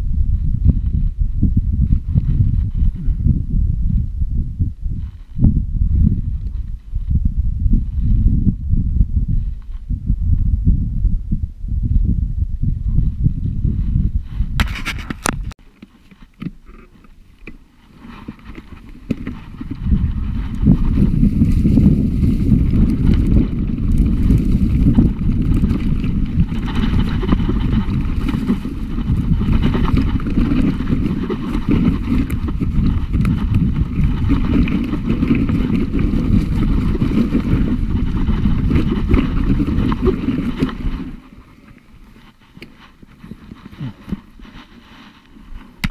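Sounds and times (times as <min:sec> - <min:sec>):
wind buffeting microphone: 0:00.0 - 0:15.6, 0:16.5 - 0:45.9
bike tyres rumbling on dirt: 0:00.0 - 0:45.9
bike rattling and knocking: 0:17.9 - 0:41.3.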